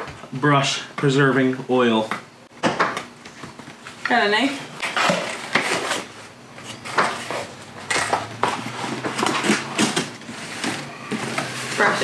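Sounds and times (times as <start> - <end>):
paper and plastic crinkling: 4.8 - 12.0.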